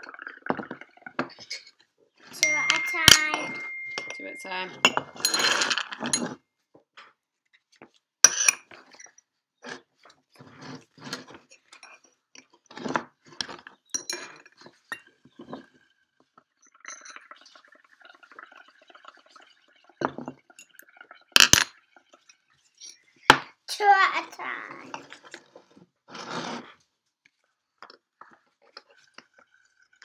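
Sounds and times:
bubbling through a straw: 0.0 - 2.4, 9.6 - 23.3, 24.7 - 30.0
ceramic pots clinking on wood: 2.4 - 6.4, 12.9 - 15.7.

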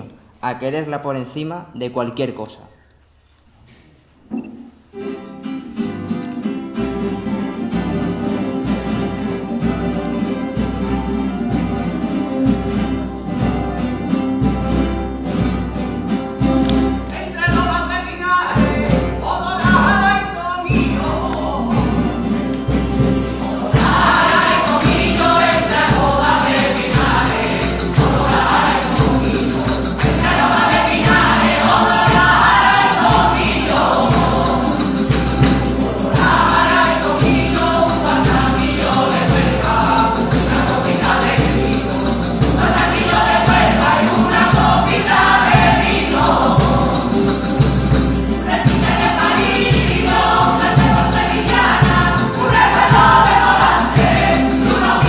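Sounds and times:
acoustic guitar: 2.4 - 55.0
percussion keeping a beat: 7.8 - 55.0
choir of mixed voices singing: 17.1 - 55.0.

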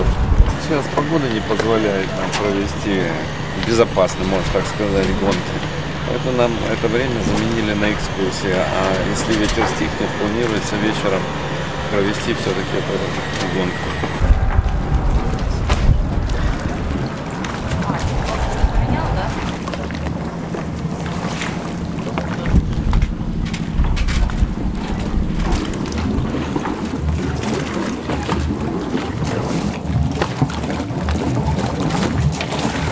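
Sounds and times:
steady low hum: 0.0 - 29.0
wind buffeting microphone: 0.0 - 29.6.

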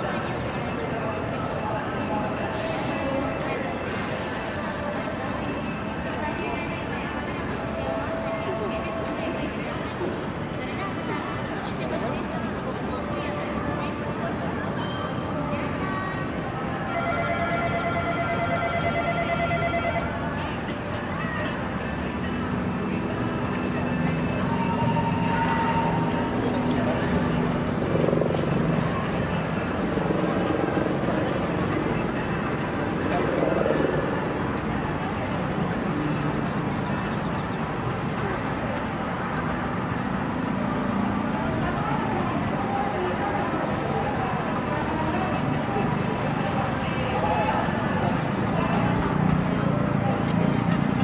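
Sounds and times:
distant voices: 0.0 - 51.0
traffic hum: 0.0 - 51.0.

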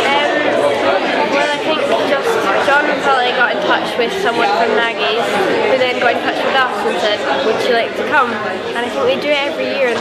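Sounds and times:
girl talking: 0.0 - 0.6, 1.4 - 10.0
people chattering: 0.0 - 10.0.

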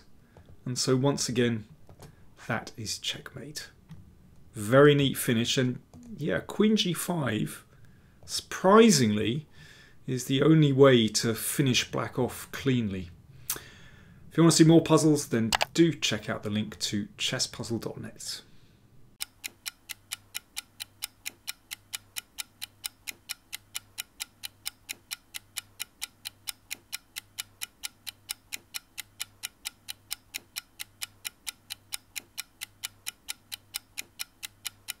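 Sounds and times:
clock ticking: 19.2 - 35.0.

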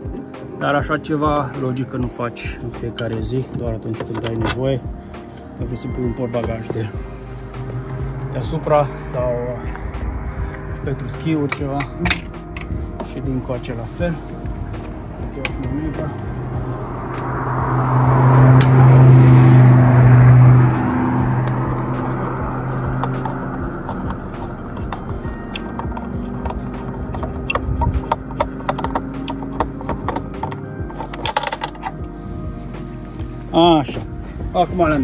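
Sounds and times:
loud low hum with rushing: 4.8 - 35.0.

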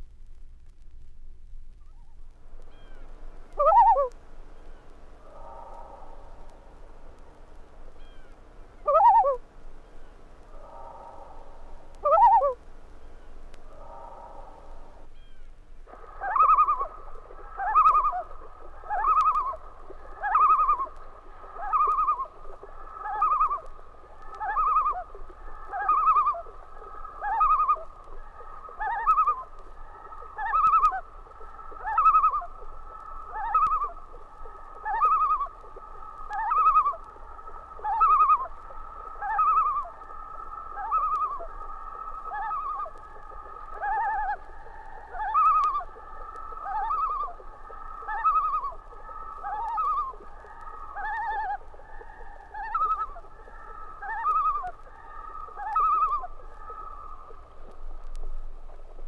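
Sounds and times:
loons calling: 1.9 - 59.0.

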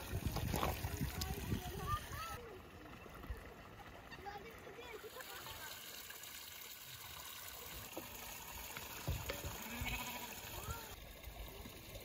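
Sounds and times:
farm animal bleating: 9.4 - 10.8.

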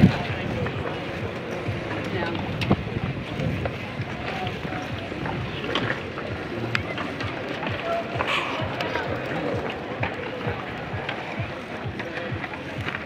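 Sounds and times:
bicycle knocks and rattles: 0.0 - 13.0
indistinct voices: 0.0 - 13.0.

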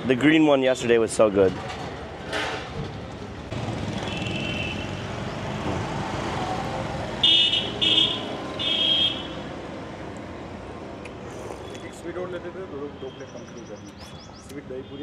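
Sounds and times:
street traffic: 0.0 - 15.0
vehicle horn honking: 4.0 - 5.0, 7.2 - 9.4.

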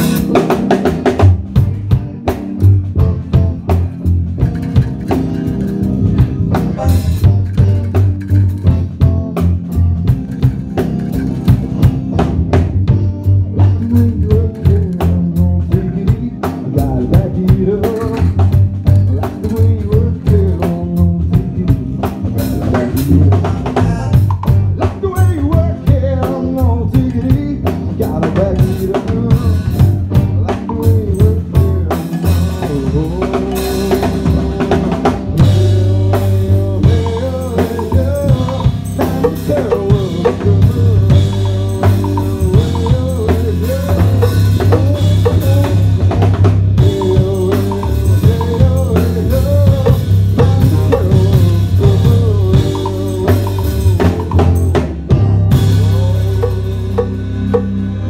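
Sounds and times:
drum kit beat with snare: 0.0 - 58.0
steady bass line: 0.0 - 58.0.

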